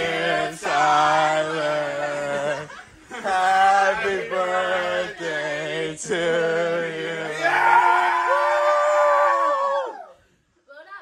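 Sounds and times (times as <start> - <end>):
group singing long note: 0.0 - 8.6.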